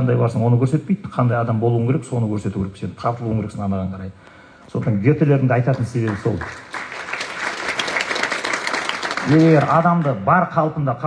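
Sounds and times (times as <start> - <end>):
man's amplified voice: 0.0 - 6.6, 9.2 - 11.0
audience clapping: 5.7 - 10.2.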